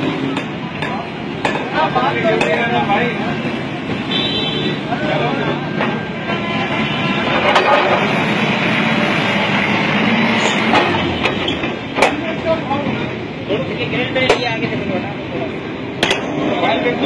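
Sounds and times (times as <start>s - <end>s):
crowd of men talking: 0.0s - 17.0s.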